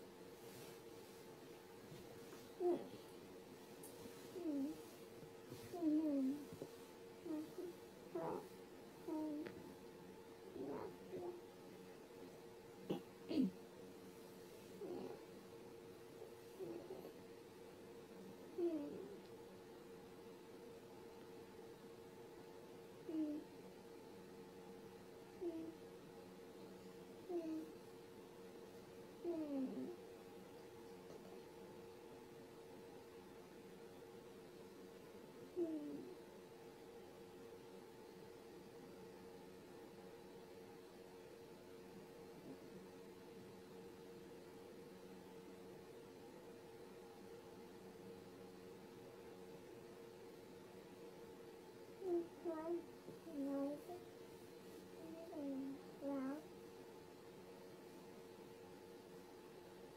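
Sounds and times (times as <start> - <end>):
faint steady hum: 0.0 - 59.9.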